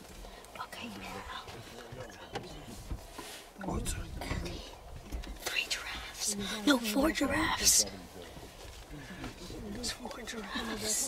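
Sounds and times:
people whispering: 0.1 - 11.0.

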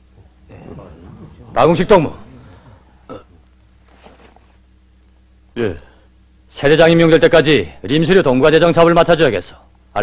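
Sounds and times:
man speaking: 0.2 - 3.4.

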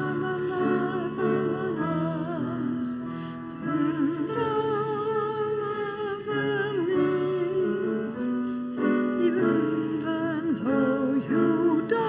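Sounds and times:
keyboard chords: 0.0 - 12.0
person singing a hymn: 0.0 - 12.0.

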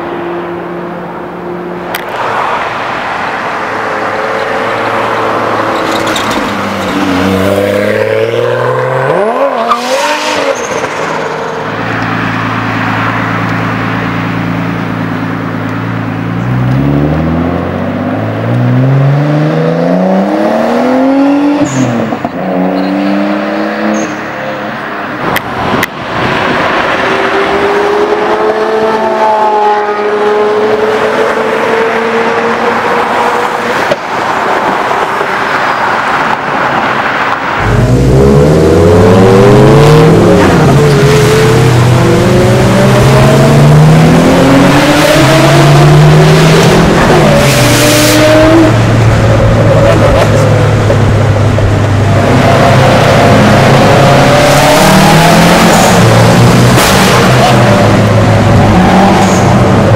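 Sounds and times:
car accelerating through gears: 37.6 - 51.0, 52.0 - 59.9
sports car engine revving: 37.6 - 59.9.

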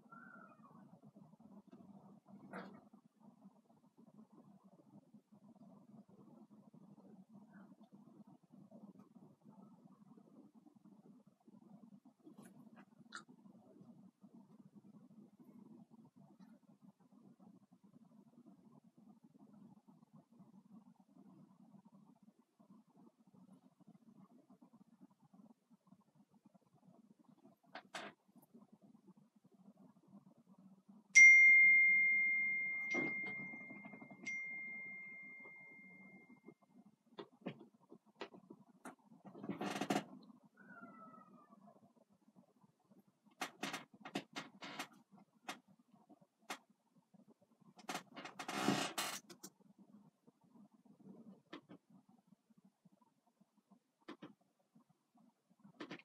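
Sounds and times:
bell-like ding ringing: 31.2 - 36.2.

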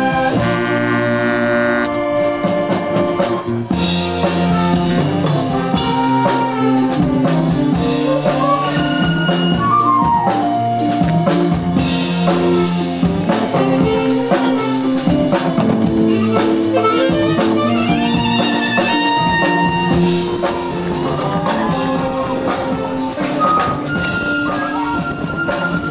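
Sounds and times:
concert band playing: 0.0 - 25.9
drum kit beat: 0.0 - 25.9.

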